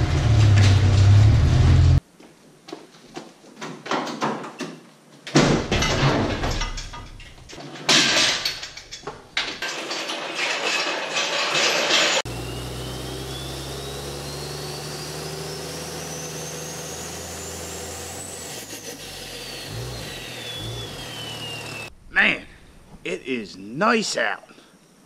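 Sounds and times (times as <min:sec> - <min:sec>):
garage noise with knocks: 0:00.0 - 0:01.3, 0:03.1 - 0:12.3.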